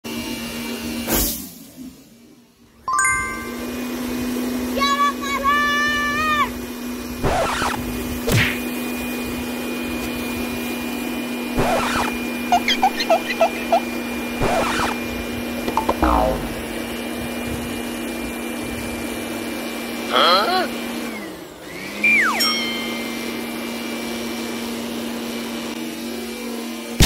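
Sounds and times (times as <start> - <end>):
electric balloon blower humming: 5.6 - 27.0
quick chirps: 11.6 - 15.0.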